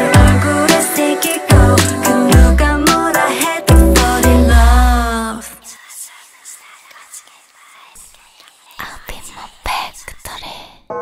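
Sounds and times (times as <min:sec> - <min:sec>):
breathy whispered female vocals: 0:03.0 - 0:10.9.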